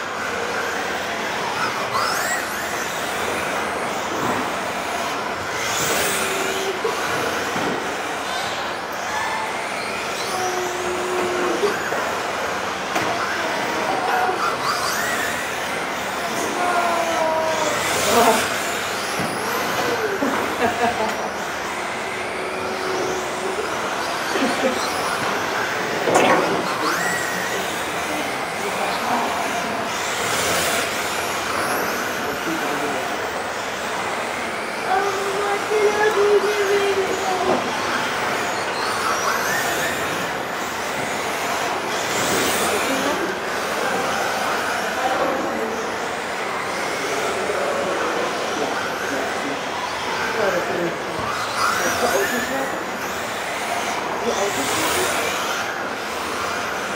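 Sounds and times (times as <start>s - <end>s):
model car motors whining: 0.0s - 56.9s.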